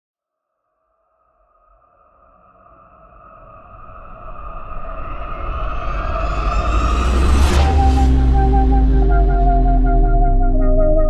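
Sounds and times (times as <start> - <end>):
synth drone: 4.6 - 11.0
low rumble: 4.9 - 11.0.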